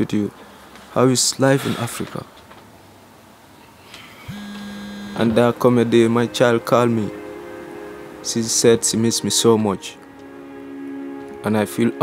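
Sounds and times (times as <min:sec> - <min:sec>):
steady low hum: 0:04.2 - 0:09.2.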